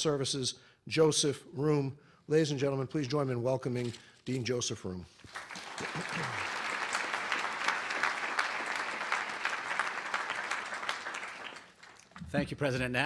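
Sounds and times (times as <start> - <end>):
audience applauding: 5.2 - 12.2.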